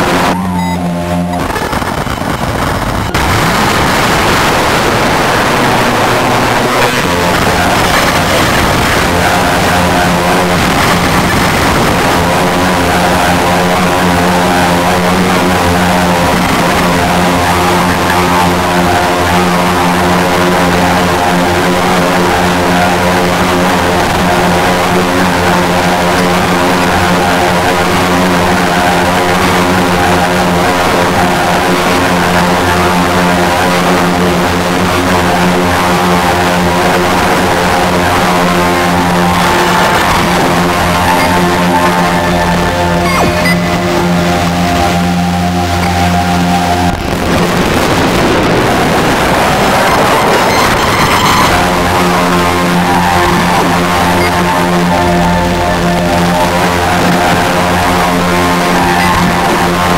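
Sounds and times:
electronic drone of low tones: 0.0 - 59.9.

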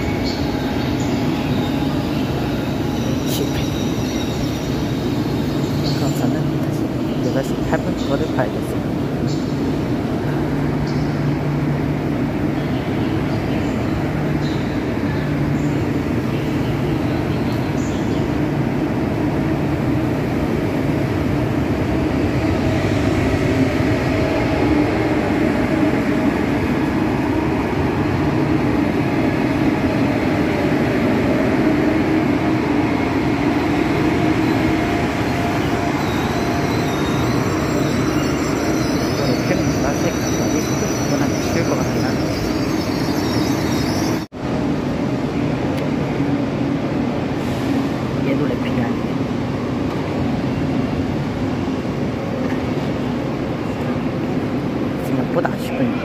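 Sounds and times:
train rumbling slowly: 0.0 - 56.0.

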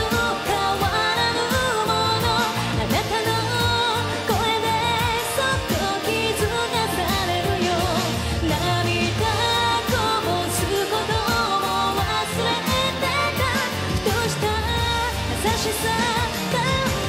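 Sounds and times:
drums steady beat: 0.0 - 17.0
live band playing: 0.0 - 17.0
woman singing pop song: 0.0 - 17.0.

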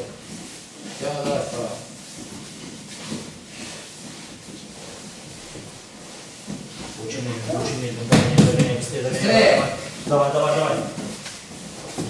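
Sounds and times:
low hall noise: 0.0 - 12.0.

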